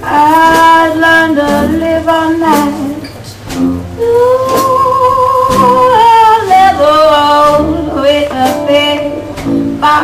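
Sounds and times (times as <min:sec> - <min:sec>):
woman singing: 0:00.0 - 0:03.1, 0:04.0 - 0:10.0
light drum beat: 0:00.0 - 0:10.0
small jazz band playing: 0:00.0 - 0:10.0.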